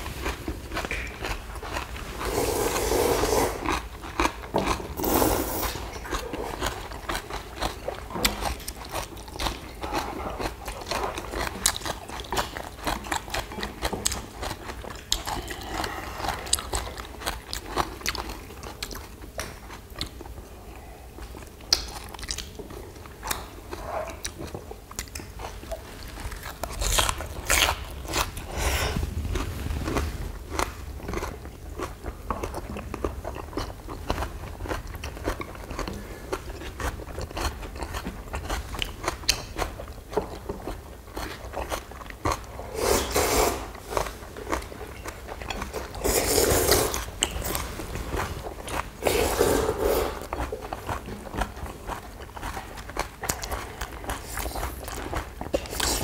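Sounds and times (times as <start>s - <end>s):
people chewing crunchy food: 0.0s - 56.0s.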